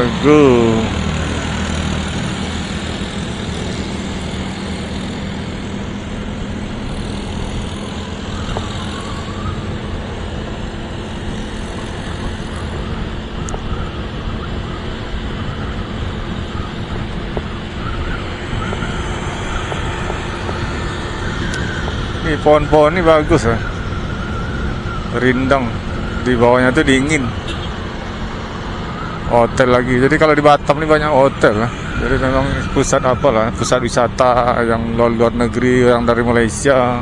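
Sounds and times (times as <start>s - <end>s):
scooter engine running: 0.0s - 22.8s
motorbikes passing: 0.0s - 37.0s.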